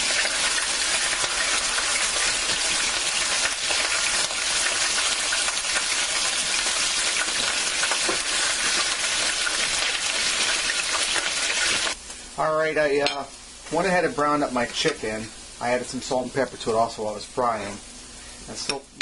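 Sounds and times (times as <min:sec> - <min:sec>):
chicken sizzling in hot oil: 0:00.0 - 0:19.0.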